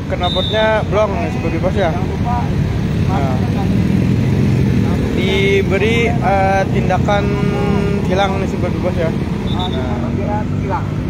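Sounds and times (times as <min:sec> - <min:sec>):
motorcycles passing close by: 0:00.0 - 0:11.0.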